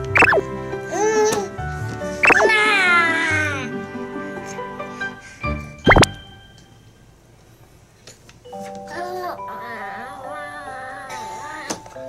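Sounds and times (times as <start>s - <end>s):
background music: 0.0s - 6.8s
upward-sliding cartoon bloop: 0.1s - 0.5s, 2.2s - 2.7s, 5.9s - 6.2s.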